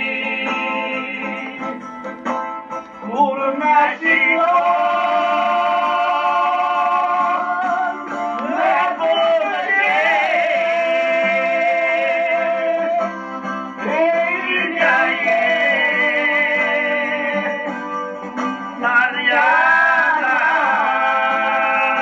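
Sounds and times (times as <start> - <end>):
plucked strings: 0.0 - 22.0.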